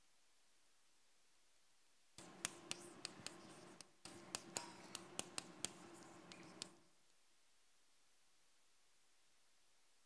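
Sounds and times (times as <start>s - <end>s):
chalk scraping on blackboard: 2.2s - 6.8s
chalk tapping on blackboard: 2.2s - 6.8s.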